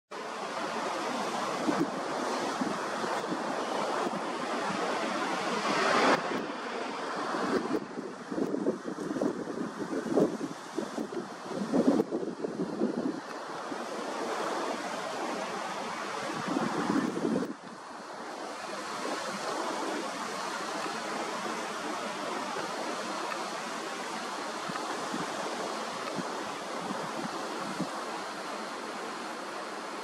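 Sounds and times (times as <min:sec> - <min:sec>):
wind buffeting microphone: 0:00.5 - 0:30.0.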